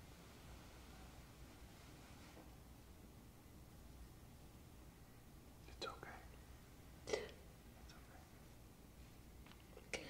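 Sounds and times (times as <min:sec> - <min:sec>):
soft whispered voice: 0:05.6 - 0:08.6, 0:09.7 - 0:10.0.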